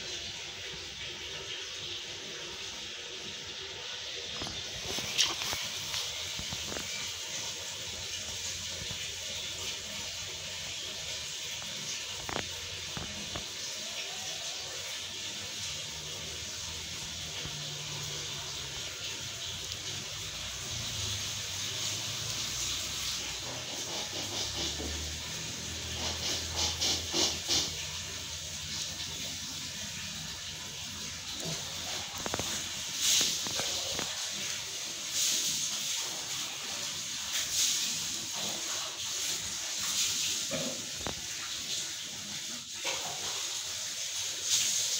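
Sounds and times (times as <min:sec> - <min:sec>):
steady high hiss: 0:00.0 - 0:44.9.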